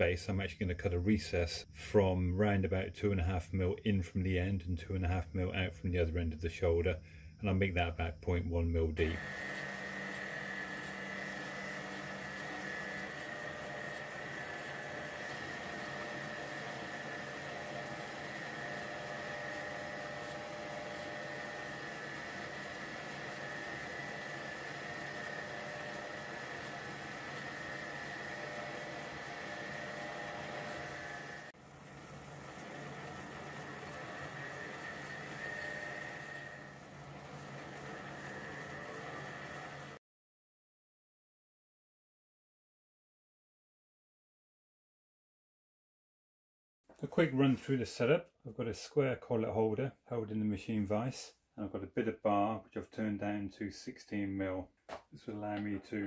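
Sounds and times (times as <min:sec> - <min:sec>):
metal lathe whining: 0:09.0 - 0:31.5, 0:32.2 - 0:40.0.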